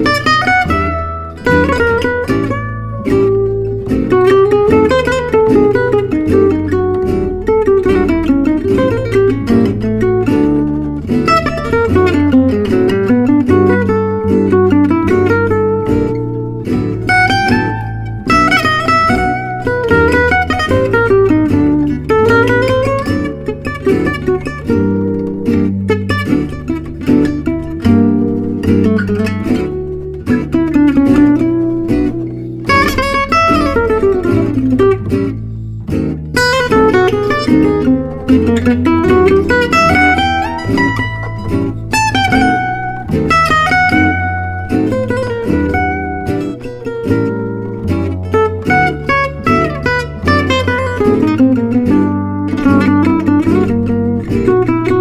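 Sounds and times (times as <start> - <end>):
acoustic guitar melody: 0.0 - 55.0.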